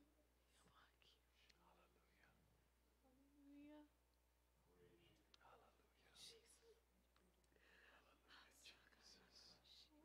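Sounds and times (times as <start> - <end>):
faint whispering voices: 0.0 - 4.0, 4.6 - 10.0.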